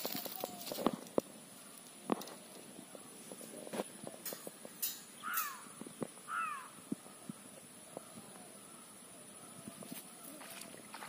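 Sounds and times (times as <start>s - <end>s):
taps on wire-mesh cage: 4.2s - 5.6s.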